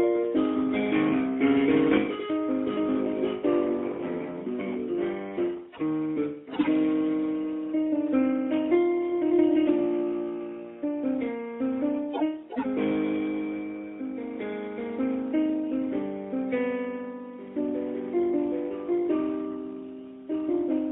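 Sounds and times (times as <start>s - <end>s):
solo instrumental music: 0.0s - 20.9s.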